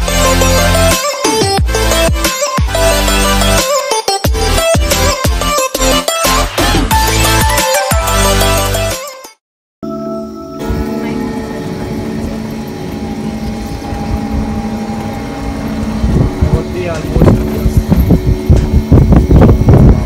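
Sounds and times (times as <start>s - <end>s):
buggy hum: 10.1s - 20.0s
wind buffeting microphone: 10.7s - 20.0s.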